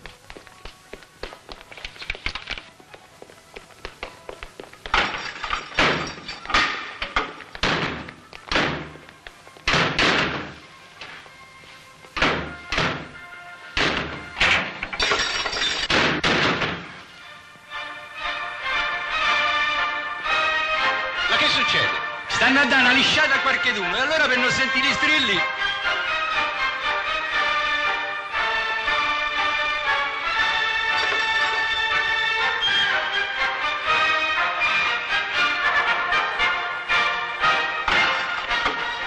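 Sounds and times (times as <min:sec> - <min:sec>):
music: 0:00.0 - 0:39.0
heavy thuds and blows: 0:05.8 - 0:10.6, 0:12.2 - 0:13.2, 0:13.8 - 0:14.8, 0:15.9 - 0:17.0.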